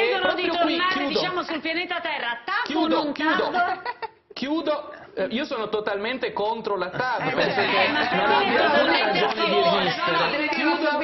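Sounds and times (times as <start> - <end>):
voices talking heatedly: 6.9 - 11.0.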